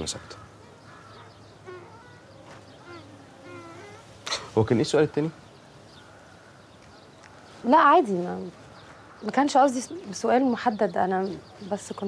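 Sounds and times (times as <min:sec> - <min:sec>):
insect buzzing: 0:00.8 - 0:04.6.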